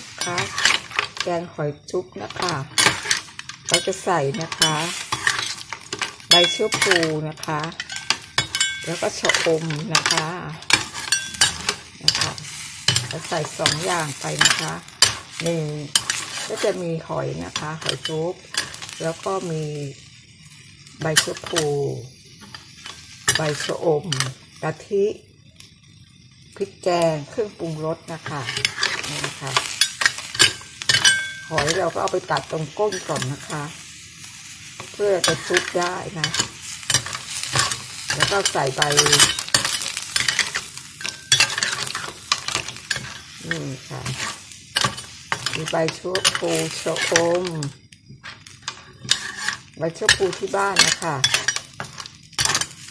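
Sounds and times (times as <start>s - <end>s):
shells scraping in a pan: 0.0s - 52.9s
spatula stirring snails in broth: 0.0s - 52.9s.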